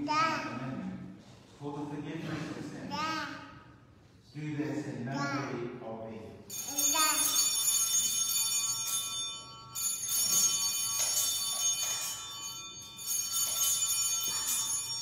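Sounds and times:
small bells jingling: 0:06.5 - 0:15.0.

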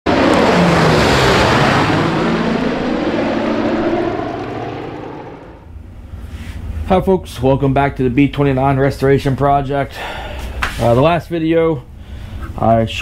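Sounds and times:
propeller aircraft engines: 0:00.1 - 0:09.2, 0:11.8 - 0:12.6.

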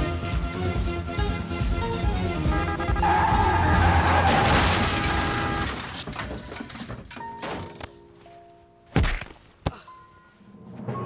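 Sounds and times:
film score music: 0:00.0 - 0:04.0
heavy crash thud: 0:04.1 - 0:06.4.

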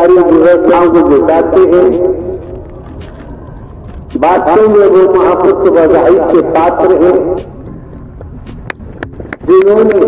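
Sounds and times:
man preaching: 0:00.0 - 0:02.4, 0:04.1 - 0:07.5, 0:09.4 - 0:10.0.

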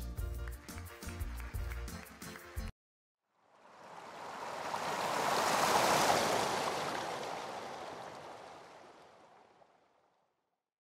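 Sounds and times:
smooth whoosh: 0:03.4 - 0:09.3.

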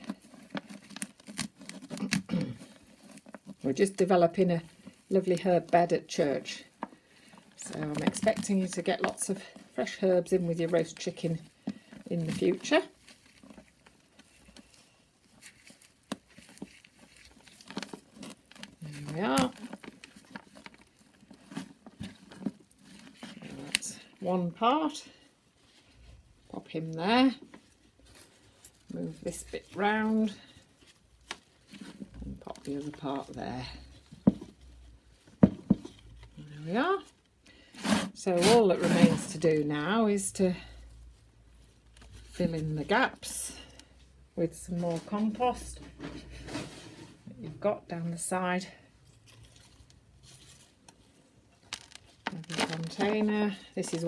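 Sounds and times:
rustles and soft scuffs: 0:02.6 - 0:36.4, 0:48.7 - 0:54.0.

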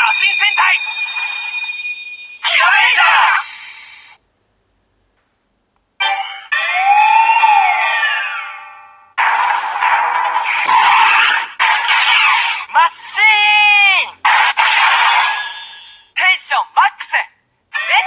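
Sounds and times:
recorded voice from toy speaker: 0:00.0 - 0:01.0, 0:02.4 - 0:03.7, 0:16.2 - 0:18.0
falling chimes: 0:00.0 - 0:04.2
held synth tone: 0:00.0 - 0:04.2.

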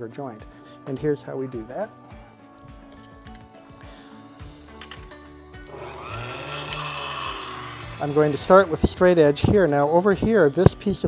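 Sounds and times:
background music: 0:00.0 - 0:11.0
small power tool running: 0:05.6 - 0:09.8.

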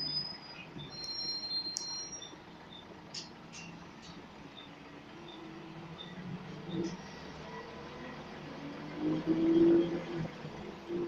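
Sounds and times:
bus diesel engine hum: 0:00.0 - 0:11.0.

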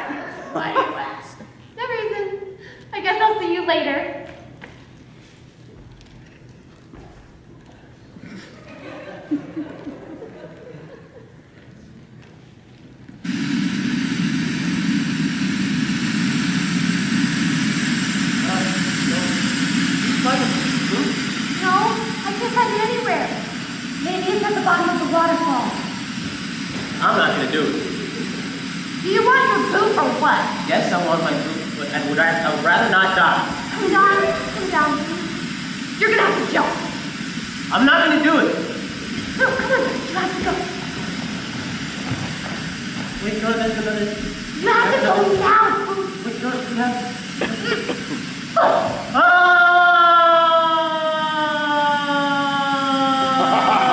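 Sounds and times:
room noise hiss: 0:00.0 - 0:53.9
voices talking: 0:17.1 - 0:41.2, 0:43.2 - 0:49.0.

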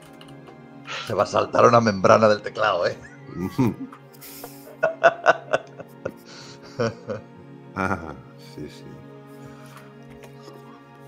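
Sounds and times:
soft background music: 0:00.0 - 0:11.0
breathy hiss: 0:00.8 - 0:01.2, 0:04.1 - 0:04.8, 0:06.0 - 0:07.1
bursts of laughter: 0:03.0 - 0:05.9.

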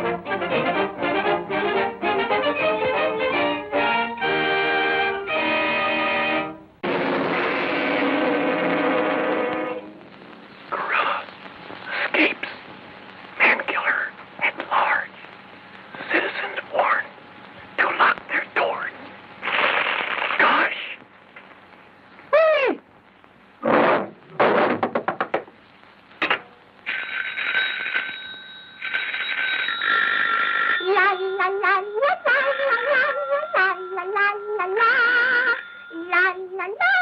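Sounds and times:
high ringing tone: 0:26.9 - 0:36.6.

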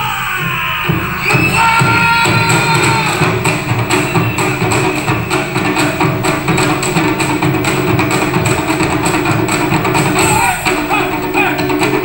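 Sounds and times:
drums struck fast beat: 0:00.0 - 0:12.0.

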